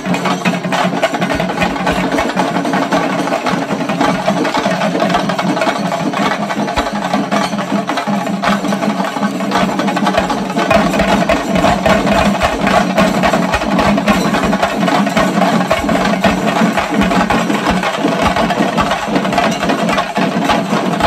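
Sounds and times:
drums beaten with sticks: 0.0 - 21.0.

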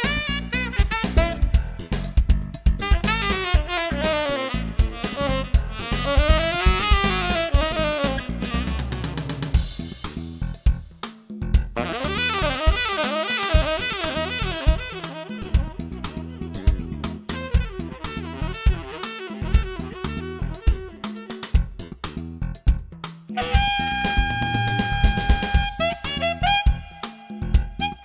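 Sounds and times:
saxophone playing quick runs: 0.0 - 1.8, 2.8 - 9.6, 11.8 - 21.6, 23.4 - 28.0
drum kit: 0.0 - 28.0.

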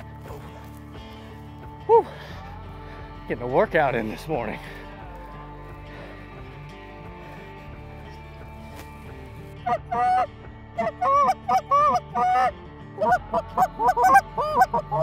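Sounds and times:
goose honking: 9.6 - 15.0.

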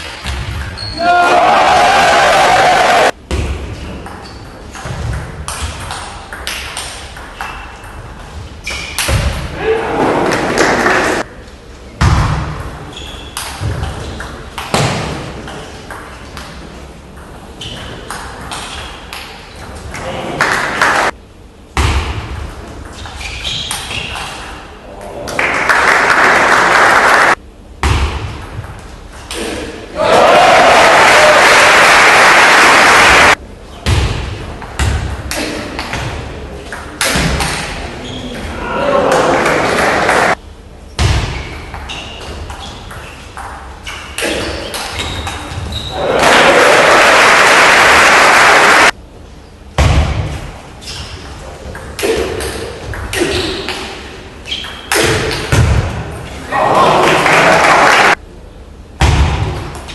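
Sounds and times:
crowd noise: 29.9 - 33.5, 37.7 - 40.4, 45.9 - 48.9, 56.2 - 58.2.

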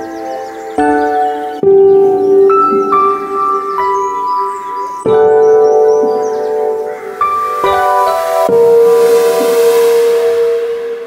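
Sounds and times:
held piano chord: 0.0 - 11.0.

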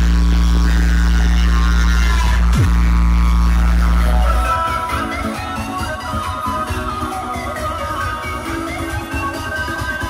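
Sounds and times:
deep bass note from speakers: 0.0 - 5.6.

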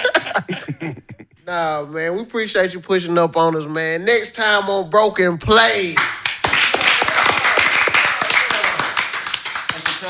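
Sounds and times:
people clapping: 5.9 - 10.0.

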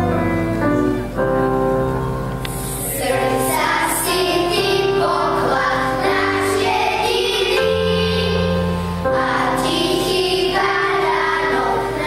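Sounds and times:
instrumental accompaniment: 0.0 - 12.0
children singing together: 2.7 - 12.0.

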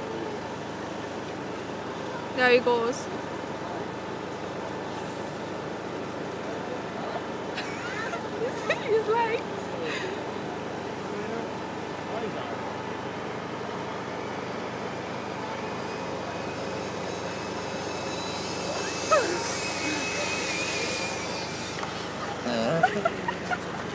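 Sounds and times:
traffic rumble: 0.0 - 23.9
high steady whine: 10.6 - 23.9.

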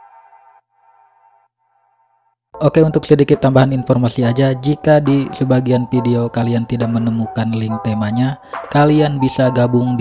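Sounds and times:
faint electronic background music: 2.6 - 10.0.

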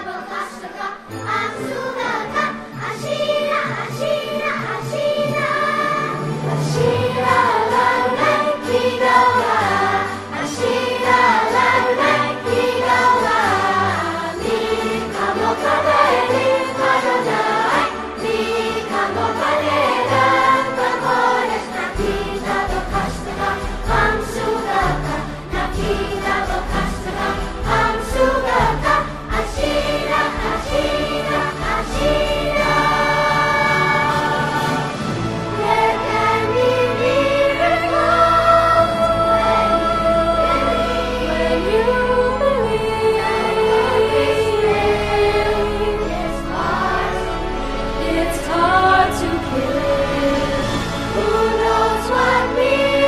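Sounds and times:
children's choir singing ballad: 0.0 - 53.0
instrumental accompaniment: 0.0 - 53.0.

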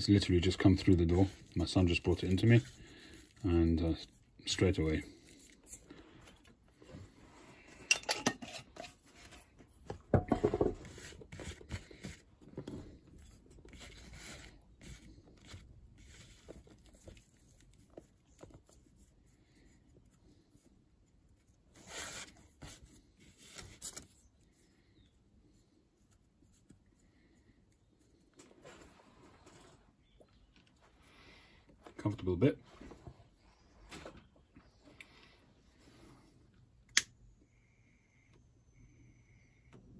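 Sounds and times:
tobacco rustling and handling: 0.0 - 32.1.

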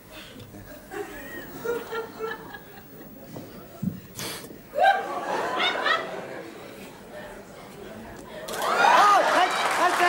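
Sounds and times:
laughter: 0.6 - 3.1, 4.8 - 6.4.

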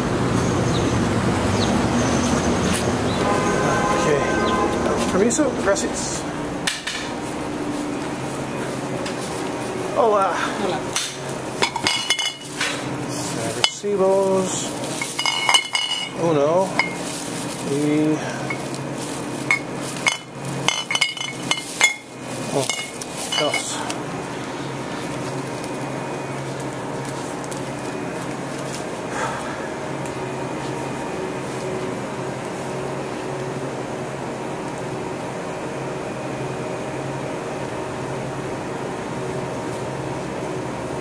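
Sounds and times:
steady hum with tones: 0.0 - 41.0
glass bottles clinking: 11.6 - 12.5, 15.0 - 17.0, 19.4 - 23.8
plastic bag crinkling: 13.5 - 23.8, 24.4 - 29.0.

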